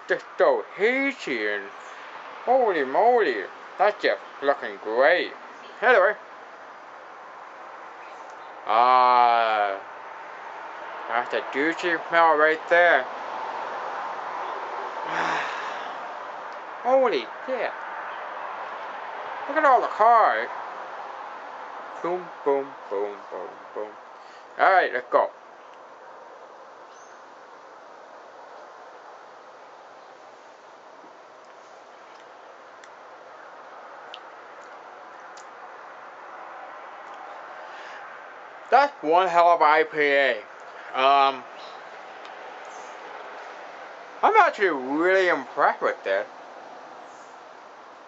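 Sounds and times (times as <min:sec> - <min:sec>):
traffic hiss: 0:00.0 - 0:48.0
man sighing: 0:08.7 - 0:09.7, 0:15.0 - 0:16.0.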